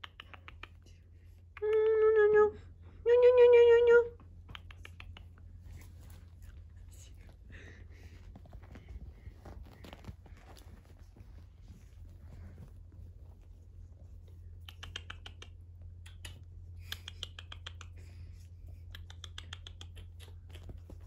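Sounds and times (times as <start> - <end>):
puppy paws on cushion: 4.3 - 17.1, 17.8 - 21.0.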